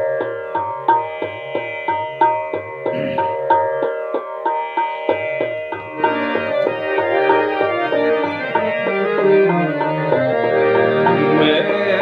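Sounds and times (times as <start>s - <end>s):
harmonium melody: 0.0s - 12.0s
tabla playing: 0.0s - 12.0s.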